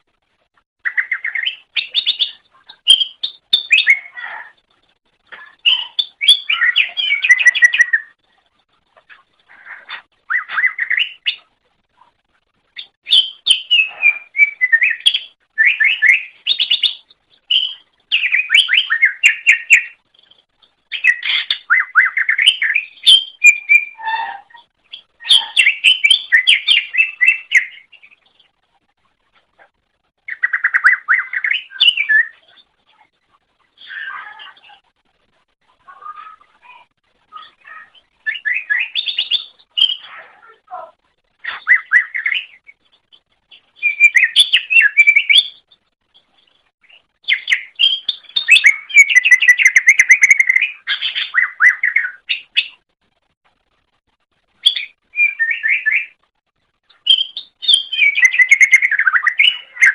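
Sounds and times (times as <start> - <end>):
bird singing trills and whistles: 0.8 - 4.6, 5.4 - 8.2, 9.5 - 11.5, 12.8 - 20.1, 20.9 - 28.4, 30.2 - 32.7, 35.9 - 40.6, 41.4 - 46.3, 46.9 - 52.8, 54.6 - 56.2, 56.9 - 59.9.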